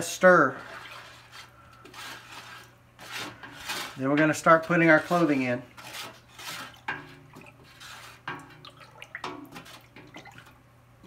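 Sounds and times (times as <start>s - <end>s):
wooden stick stirring liquid in pot: 0.1s - 10.6s.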